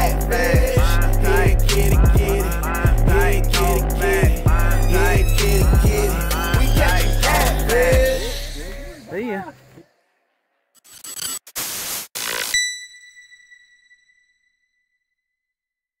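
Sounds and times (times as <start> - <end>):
person singing: 0.0 - 9.1
backing music: 0.0 - 9.2
ringing chime: 12.6 - 14.7.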